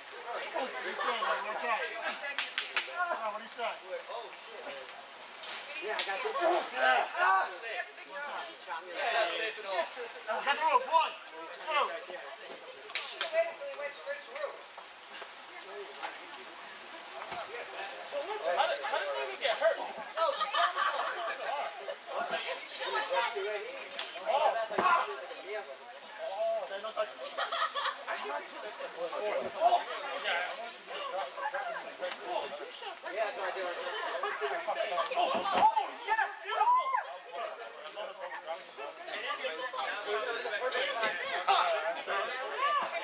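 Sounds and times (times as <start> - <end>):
people chattering: 0.0 - 43.0
people laughing: 0.5 - 2.4, 19.9 - 22.6, 27.1 - 29.0, 33.6 - 35.6.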